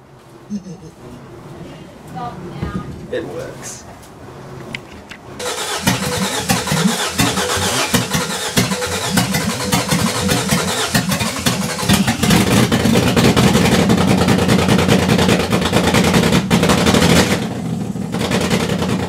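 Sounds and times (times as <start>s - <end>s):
engine running steadily: 3.4s - 19.0s
engine starter cranking: 5.4s - 14.3s.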